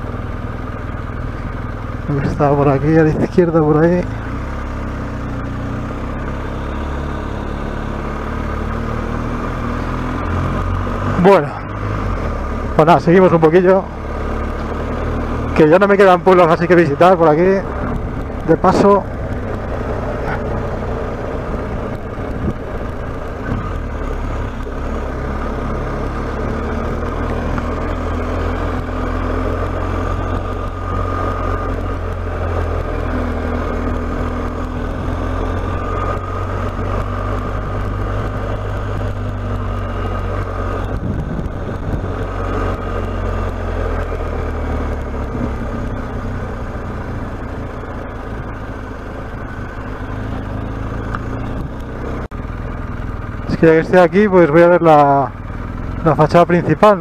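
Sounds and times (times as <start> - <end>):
motorcycle engine running: 0.0 - 57.0
wind noise: 21.8 - 23.8, 36.7 - 42.5.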